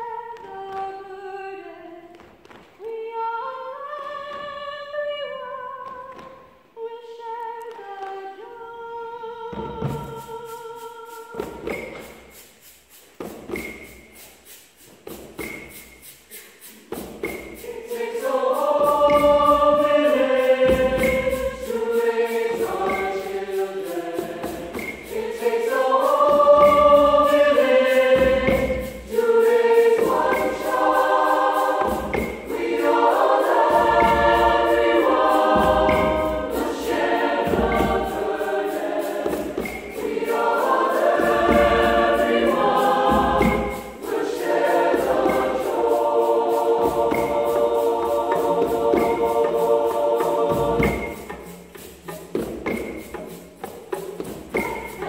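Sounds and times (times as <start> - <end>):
mixed choir singing: 7.7 - 12.3, 16.3 - 51.8, 54.5 - 55.0
hand drums low strokes: 9.7 - 55.0.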